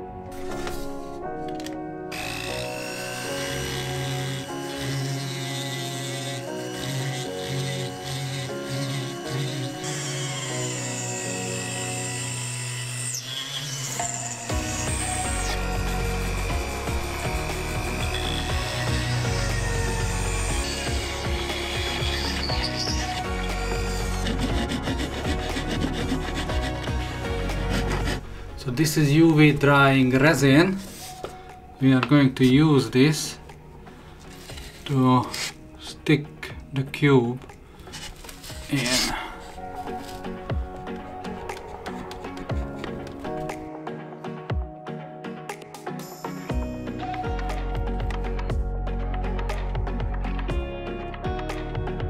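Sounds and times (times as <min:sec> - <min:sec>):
rotary tool whining: 0:00.4 - 0:28.6, 0:34.2 - 0:35.7, 0:37.8 - 0:43.5
bit grinding wood: 0:00.4 - 0:31.4, 0:34.2 - 0:35.7, 0:37.8 - 0:43.6.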